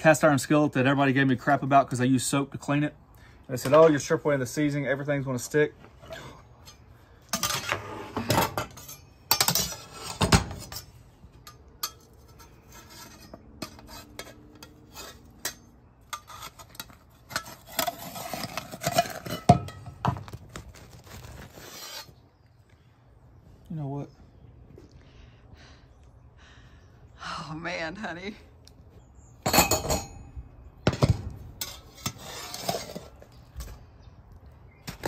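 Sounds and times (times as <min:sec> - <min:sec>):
metal spatula scraping pan: 0:06.0 - 0:19.8, 0:31.6 - 0:33.4.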